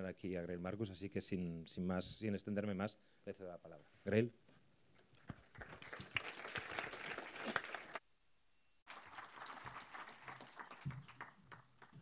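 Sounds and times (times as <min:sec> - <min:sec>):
audience applauding: 0:05.3 - 0:08.0, 0:08.9 - 0:12.0.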